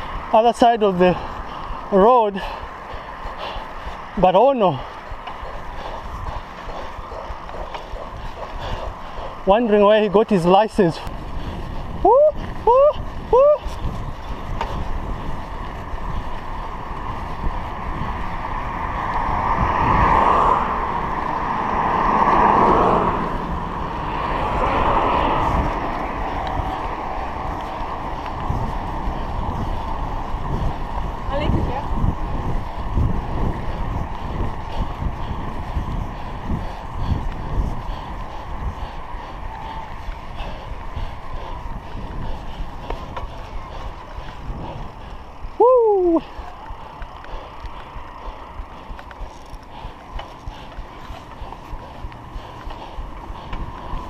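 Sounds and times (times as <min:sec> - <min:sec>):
bicycle road rumble: 0:00.0 - 0:54.0
wind rush on microphone: 0:00.0 - 0:54.0.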